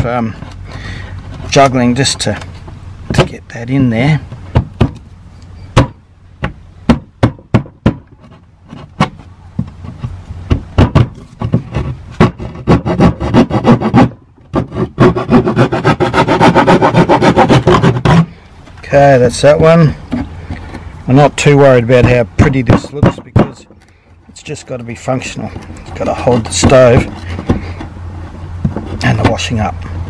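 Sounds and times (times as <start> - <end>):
hand saw rasping through plywood: 8.0 - 18.4, 24.4 - 29.5.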